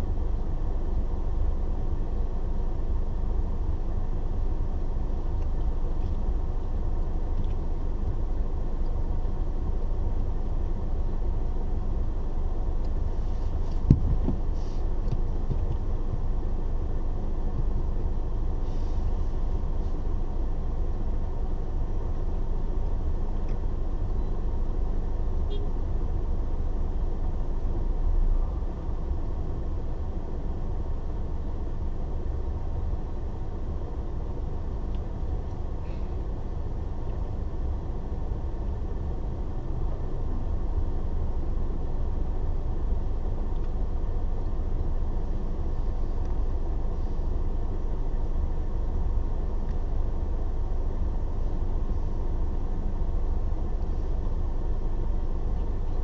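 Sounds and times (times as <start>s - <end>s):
car idling: 0.0s - 56.0s.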